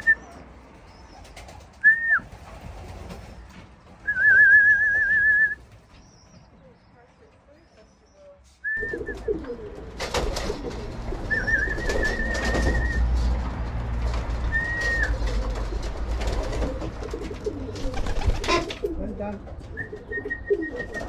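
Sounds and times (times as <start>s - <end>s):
pigeons cooing: 8.8s - 13.4s, 14.3s - 21.0s.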